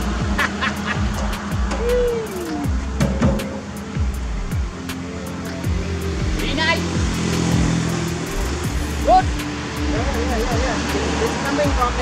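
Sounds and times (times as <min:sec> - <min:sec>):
music playing: 0:00.0 - 0:12.0.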